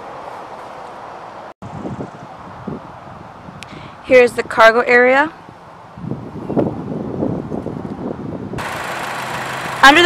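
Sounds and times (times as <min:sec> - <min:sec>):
wind buffeting microphone: 0:01.6 - 0:10.0
car engine idling: 0:08.6 - 0:10.0.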